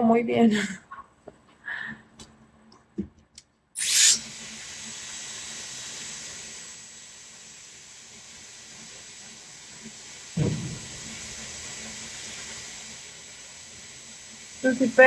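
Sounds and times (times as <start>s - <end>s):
short low thump: 10.4s - 11.0s.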